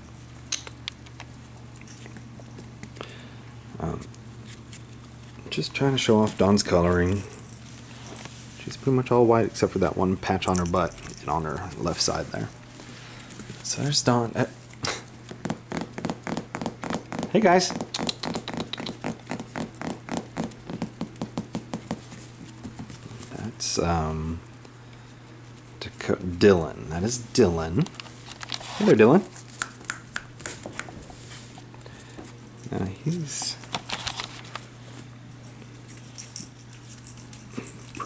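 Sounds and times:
steady low hum: 0:00.0 - 0:38.0
puppies' toenails clicking on tiles: 0:14.7 - 0:23.3, 0:29.4 - 0:32.3.

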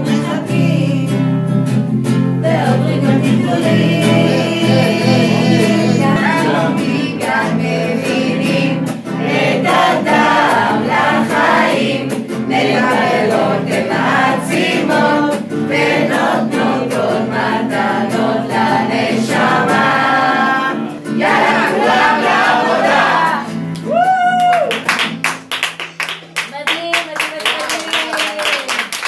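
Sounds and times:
group singing in unison: 0:00.0 - 0:01.5, 0:02.4 - 0:23.7
strummed acoustic guitar: 0:00.0 - 0:23.9.

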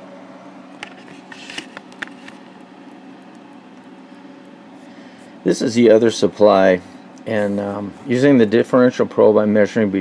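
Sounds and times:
equipment humming: 0:00.0 - 0:10.0.

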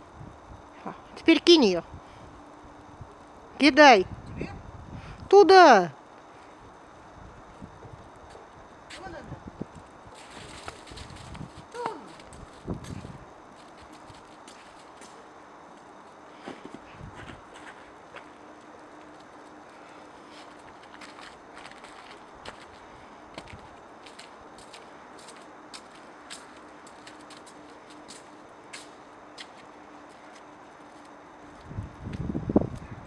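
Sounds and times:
faint steady hum: 0:00.0 - 0:33.0
footsteps on snow and paving: 0:09.8 - 0:32.9.

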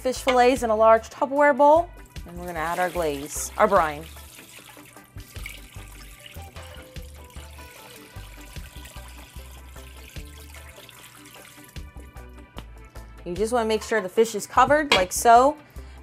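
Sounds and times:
background music: 0:00.0 - 0:16.0
liquid pouring and splashing: 0:02.0 - 0:12.1.

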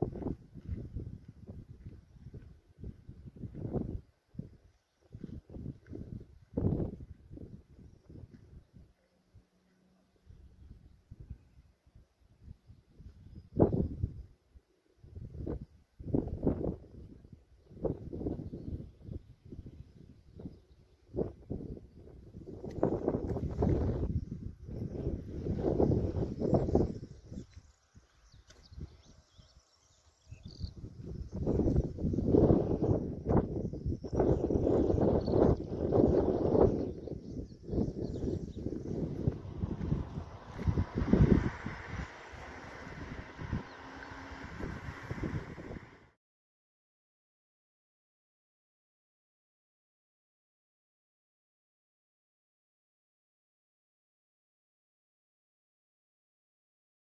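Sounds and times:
wind buffeting microphone: 0:00.0 - 0:09.0, 0:10.2 - 0:14.4, 0:15.0 - 0:46.1.

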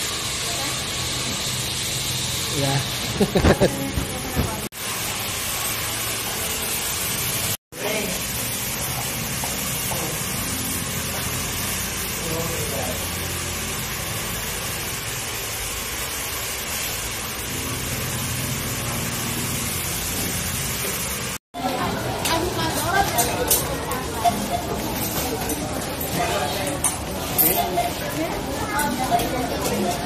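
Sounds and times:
faint voices: 0:21.6 - 0:30.0.

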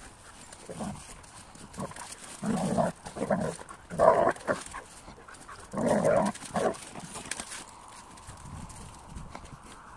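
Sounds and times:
dogs grunting: 0:00.6 - 0:07.4.

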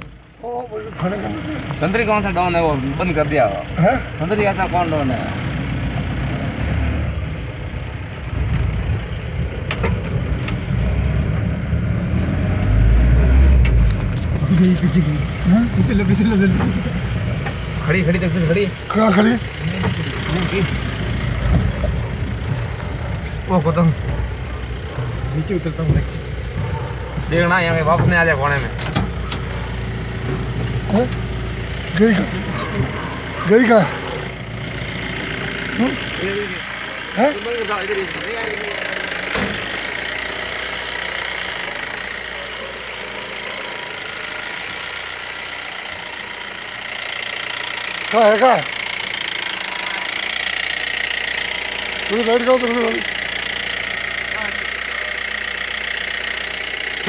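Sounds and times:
vehicle engine running: 0:00.0 - 0:57.0
people talking: 0:00.4 - 0:05.4, 0:14.4 - 0:16.9, 0:17.8 - 0:22.2, 0:25.3 - 0:26.1, 0:27.2 - 0:28.8, 0:31.9 - 0:34.1, 0:35.7 - 0:39.2, 0:48.1 - 0:48.7, 0:52.1 - 0:53.1, 0:54.3 - 0:55.2.

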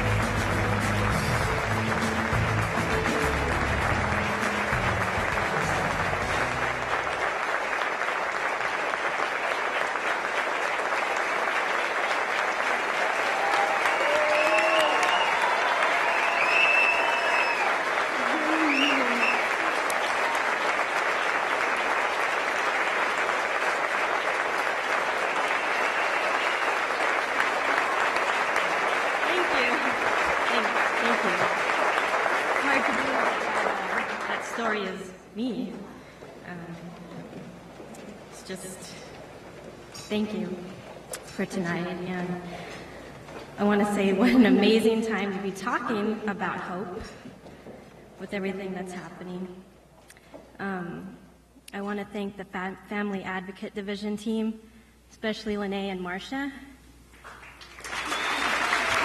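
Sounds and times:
music playing: 0:00.0 - 0:07.3
audience applauding: 0:00.0 - 0:35.2, 0:57.2 - 0:59.0.

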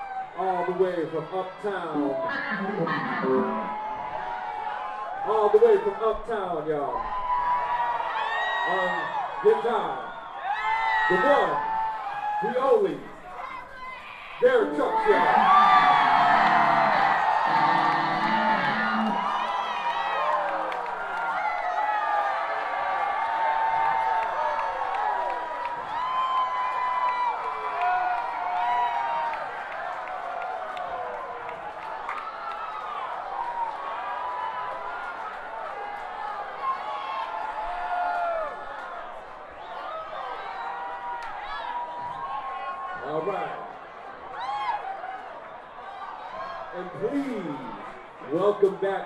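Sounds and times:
club crowd cheering: 0:00.0 - 0:49.0.

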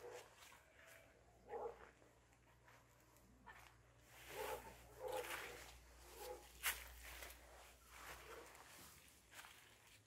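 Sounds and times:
dog barking faintly: 0:00.0 - 0:00.4, 0:01.4 - 0:02.0, 0:03.4 - 0:06.6, 0:08.1 - 0:08.7.

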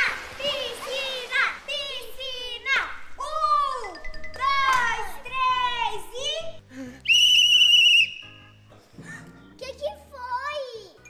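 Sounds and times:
children calling excitedly: 0:00.0 - 0:06.6
shrill whistle blast: 0:07.1 - 0:08.6.

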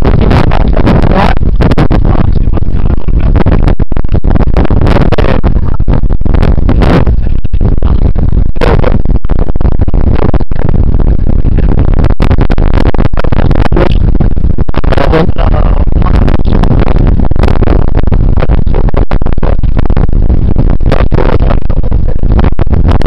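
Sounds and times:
wind buffeting microphone: 0:00.0 - 0:23.0.

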